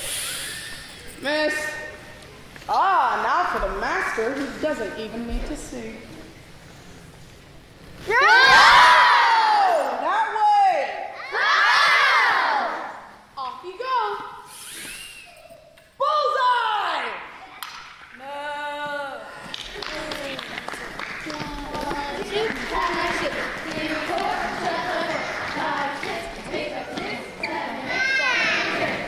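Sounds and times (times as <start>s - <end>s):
children shouting together: 11.1s - 12.9s, 27.4s - 29.0s
murmur of voices: 18.1s - 29.0s.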